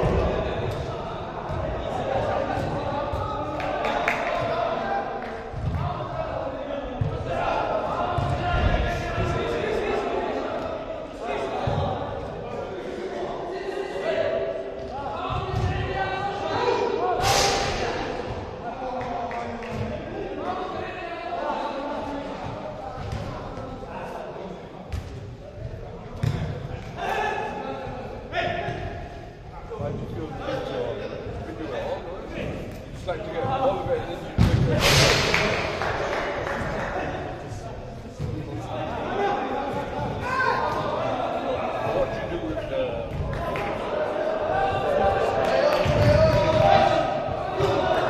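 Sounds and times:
players shouting in a hall: 0:00.0 - 0:22.9, 0:26.9 - 0:32.1, 0:38.4 - 0:48.0
players shouting: 0:38.6 - 0:48.0.

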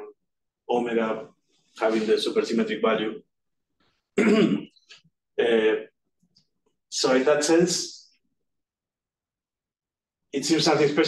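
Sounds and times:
man clearing his throat: 0:04.2 - 0:04.8.

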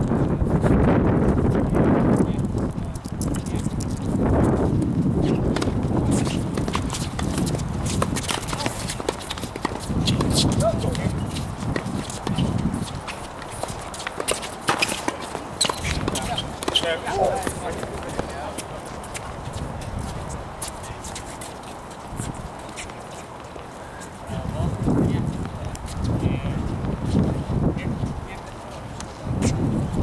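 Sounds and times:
wind rumbling on microphone: 0:00.0 - 0:14.6, 0:15.4 - 0:23.1, 0:24.1 - 0:30.0
shoes on a hard court: 0:00.0 - 0:30.0
tennis balls bouncing: 0:02.9 - 0:24.3.

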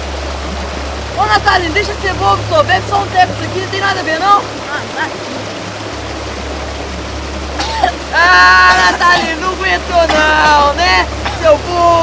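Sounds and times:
waterfall rushing: 0:00.0 - 0:12.0
boy coughing and spluttering: 0:04.7 - 0:05.4, 0:07.5 - 0:11.8.

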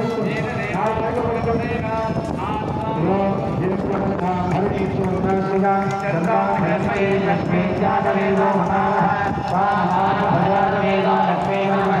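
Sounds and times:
fast rhythmic percussion: 0:00.1 - 0:12.0
person singing a chant: 0:06.6 - 0:12.0.

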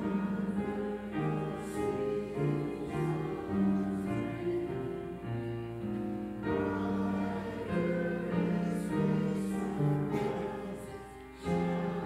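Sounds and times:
congregation singing a hymn: 0:00.0 - 0:12.0
piano accompaniment: 0:00.0 - 0:12.0.

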